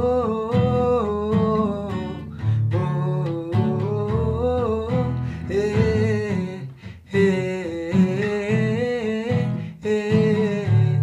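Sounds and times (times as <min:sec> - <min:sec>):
acoustic guitar: 0:00.0 - 0:11.0
man singing wordless notes: 0:00.0 - 0:11.0.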